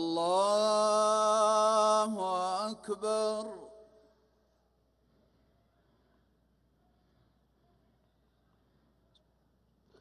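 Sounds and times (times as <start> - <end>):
echo of chanting voice: 0.0 - 4.8.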